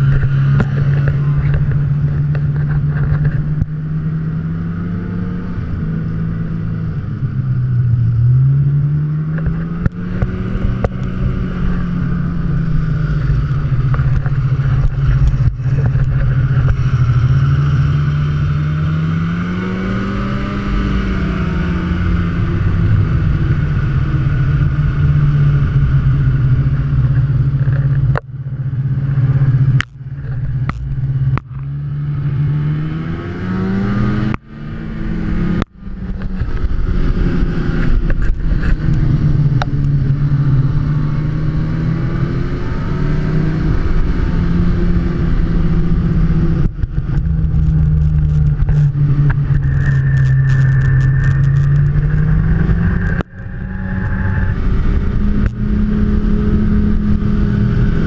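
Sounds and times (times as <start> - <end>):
snowmobile engine running: 0.0 - 58.0.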